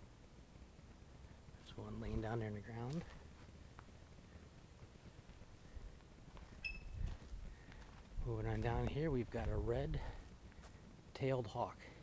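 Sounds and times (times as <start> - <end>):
low outdoor rumble: 0.0 - 12.0
high-pitched chirp: 6.6 - 7.0.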